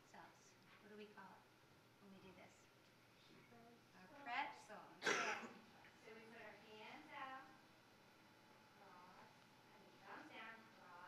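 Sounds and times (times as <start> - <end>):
person clearing throat: 5.0 - 5.6
person coughing: 5.0 - 5.6.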